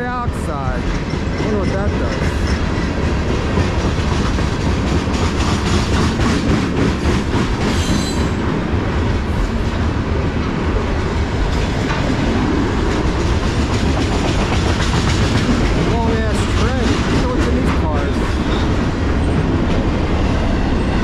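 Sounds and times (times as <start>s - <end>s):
freight train wheels clicking: 0.0s - 21.0s
high wheel squeal: 7.7s - 8.4s.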